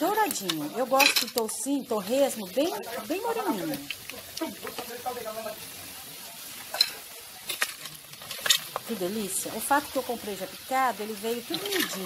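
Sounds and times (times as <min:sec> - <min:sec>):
pork frying in hot oil: 0:00.0 - 0:12.0.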